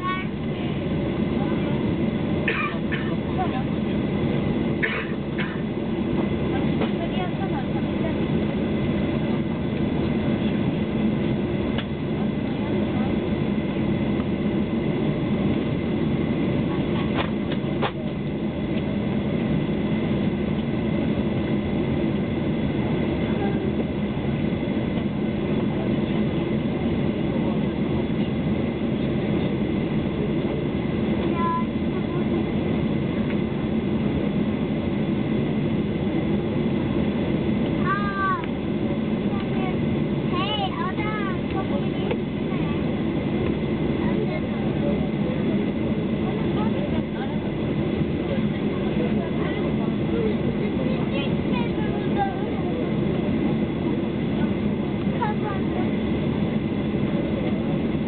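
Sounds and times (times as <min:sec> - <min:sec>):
airplane cabin engine hum: 0:00.0 - 0:58.0.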